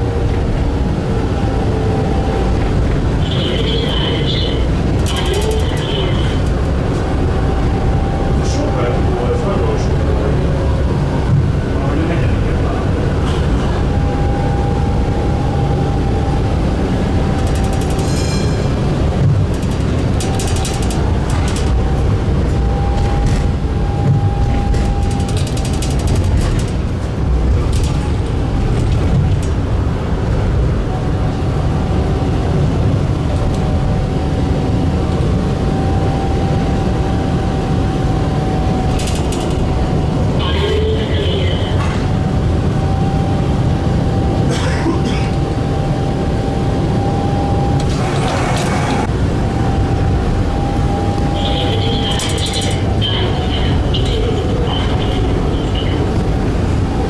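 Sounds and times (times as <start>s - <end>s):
constant high whine: 0.0s - 57.0s
tram wheels rumbling: 0.0s - 57.0s
rapid clicking and rattling: 4.8s - 6.8s, 17.3s - 22.0s, 24.6s - 29.7s, 38.8s - 39.9s, 51.8s - 52.9s.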